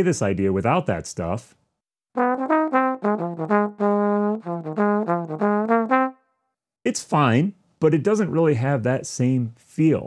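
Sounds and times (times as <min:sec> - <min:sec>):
trombone playing jazz blues phrase: 0:02.2 - 0:06.1.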